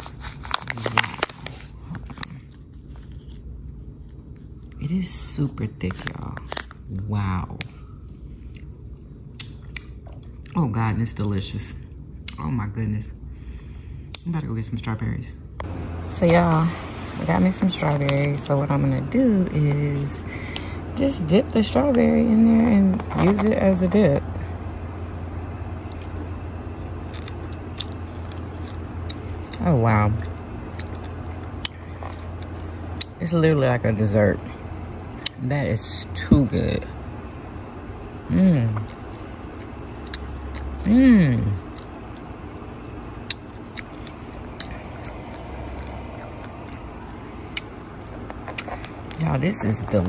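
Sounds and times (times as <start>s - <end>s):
low background rumble: 0.0s - 50.0s
person chewing and eating: 8.2s - 10.6s, 24.3s - 33.2s, 38.1s - 50.0s.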